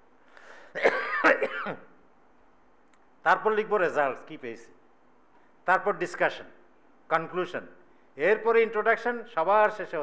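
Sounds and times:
man clearing his throat: 0.7 - 1.9.

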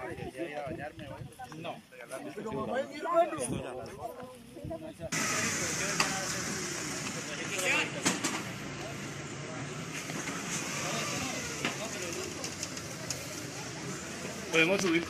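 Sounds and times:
faint indistinct voices: 0.0 - 15.0.

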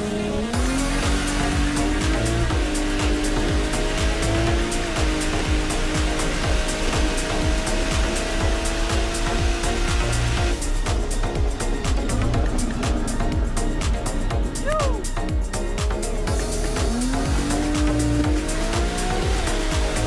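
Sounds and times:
music with steady beat: 0.0 - 20.0
race car engine at full throttle: 0.0 - 20.0.

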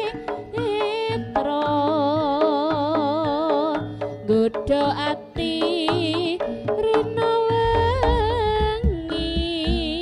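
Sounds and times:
drums: 0.0 - 10.0.

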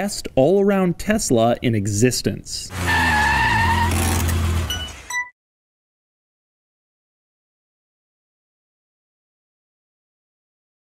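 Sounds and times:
car engine humming: 2.7 - 5.2.

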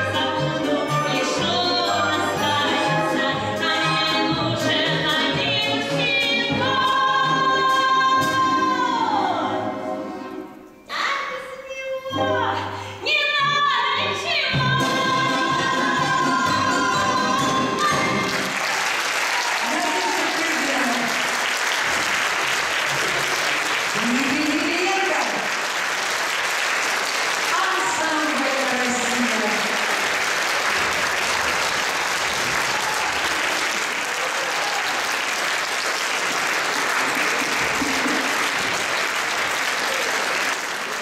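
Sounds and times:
audience applauding: 18.0 - 41.0
voice over clapping: 19.3 - 21.4.

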